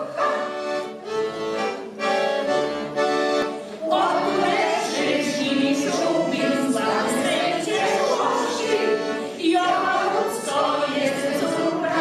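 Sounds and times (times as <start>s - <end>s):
choir singing: 0.0s - 2.6s, 3.8s - 12.0s.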